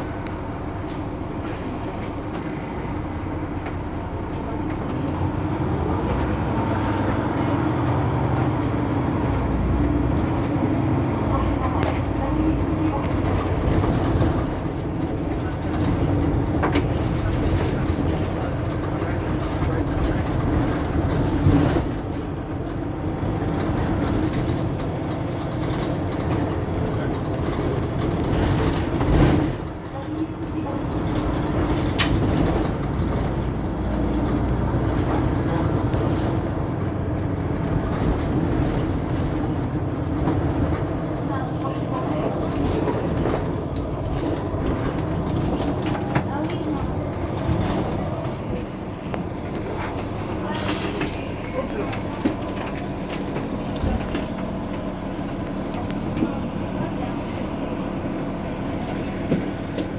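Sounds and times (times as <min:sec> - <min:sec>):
bus diesel engine drone: 0:00.0 - 0:59.9.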